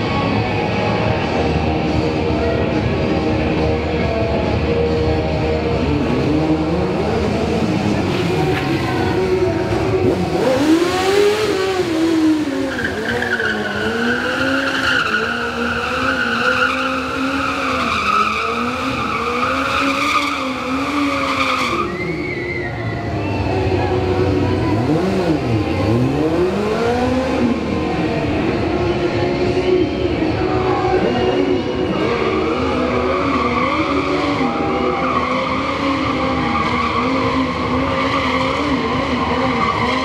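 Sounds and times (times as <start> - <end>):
motorcycle engine revving: 2.7 - 40.0
tyre squealing in a skid: 7.0 - 26.2, 31.9 - 40.0.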